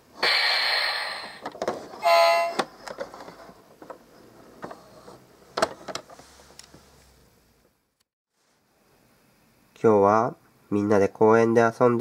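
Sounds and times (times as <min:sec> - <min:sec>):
electronic hiss: 0:00.2 - 0:01.4
toy horn beep: 0:02.0 - 0:02.6.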